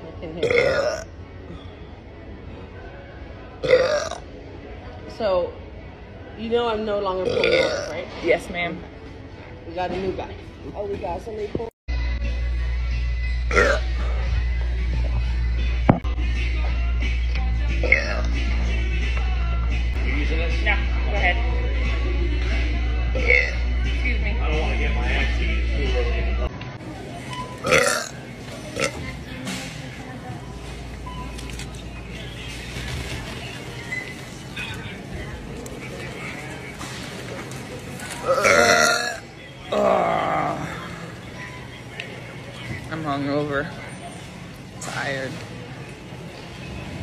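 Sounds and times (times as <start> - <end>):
woman burping: 0.4 - 1.1, 3.6 - 4.2, 7.2 - 8.0, 13.5 - 13.9, 17.8 - 18.3, 23.1 - 23.6, 27.6 - 28.2, 38.2 - 40.8.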